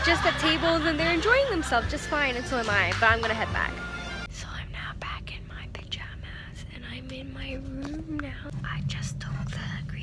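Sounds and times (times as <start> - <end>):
woman whispering: 4.3 - 7.0, 8.6 - 10.0.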